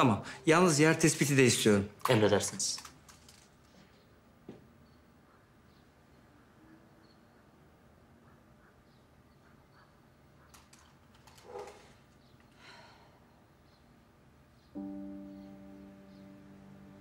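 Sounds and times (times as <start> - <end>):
faint clicks: 2.0 - 3.8, 10.4 - 12.6
sustained low orchestral chord: 14.8 - 17.0.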